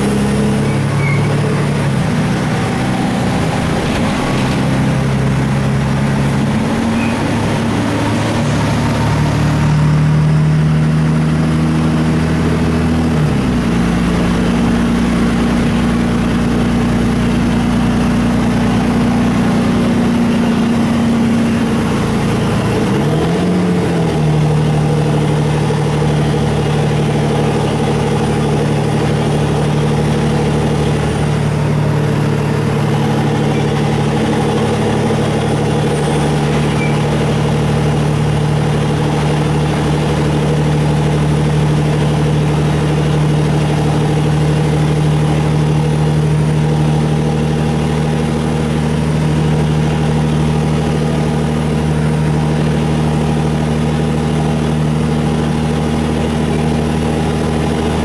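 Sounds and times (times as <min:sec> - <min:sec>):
bus diesel engine droning: 0:00.0 - 0:58.0.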